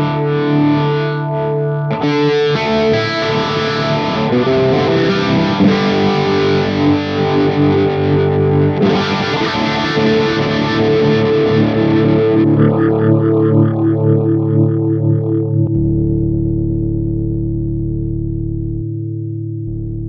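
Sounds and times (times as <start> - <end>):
distorted electric guitar: 0.0 - 20.0.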